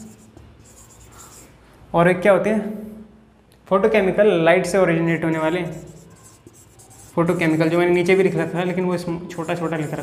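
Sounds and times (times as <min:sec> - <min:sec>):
marker scratching on whiteboard: 0:00.0 - 0:01.6, 0:05.2 - 0:10.0.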